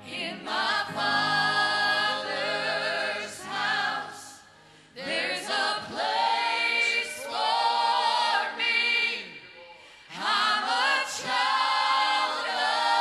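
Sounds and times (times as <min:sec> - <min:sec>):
group singing gospel in harmony: 0:00.0 - 0:13.0.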